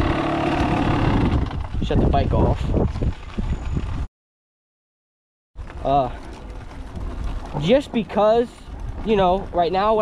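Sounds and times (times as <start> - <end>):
dirt bike rolling noise: 0.0 - 4.1, 5.6 - 10.0
wind rush on microphone: 0.0 - 4.1, 8.2 - 10.0.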